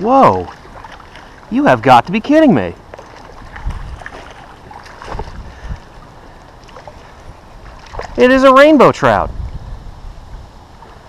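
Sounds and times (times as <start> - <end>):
water splashing: 0.0 - 9.6.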